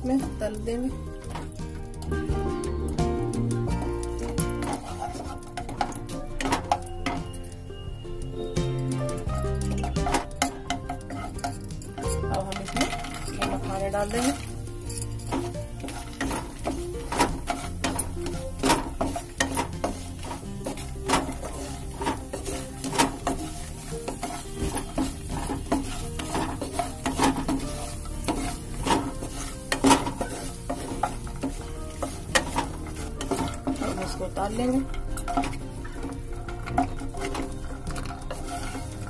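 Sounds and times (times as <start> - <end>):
spatula scraping and knocking pan: 0.0 - 7.6, 8.5 - 39.0
light sizzle: 0.0 - 39.0.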